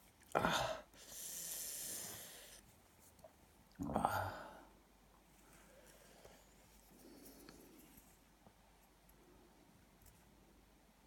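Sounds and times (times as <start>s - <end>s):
person hissing breath through teeth: 0.9s - 2.6s.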